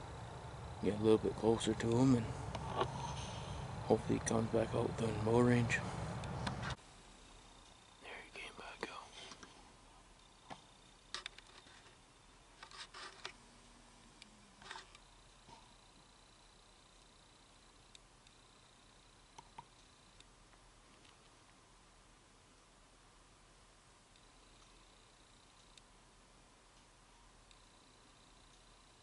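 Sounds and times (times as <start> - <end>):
faint whispers: 8.0 - 9.8
small clicks and rustles: 9.2 - 13.4, 14.0 - 15.7, 19.3 - 21.6.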